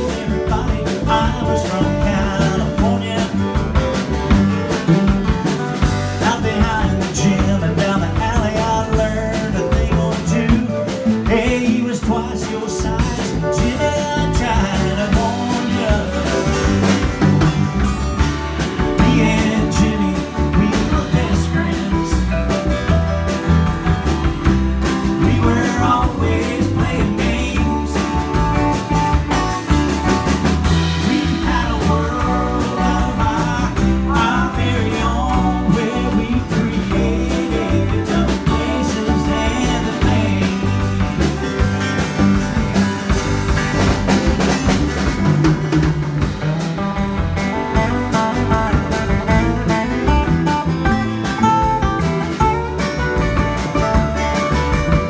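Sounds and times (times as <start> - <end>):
guitars strummed and picked: 0.0 - 55.0
upright bass: 0.0 - 55.0.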